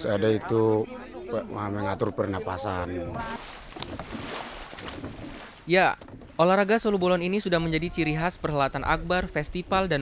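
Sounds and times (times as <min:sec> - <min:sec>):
paddles splashing in water: 0:03.2 - 0:06.4.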